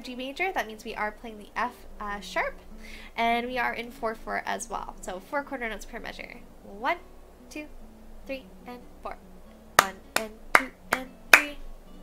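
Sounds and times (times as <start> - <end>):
hand claps: 9.8 - 11.6.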